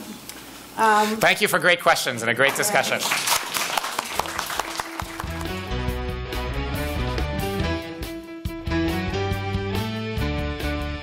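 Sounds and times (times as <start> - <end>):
audience applause: 2.4 - 5.9
instrumental music: 4.8 - 11.0.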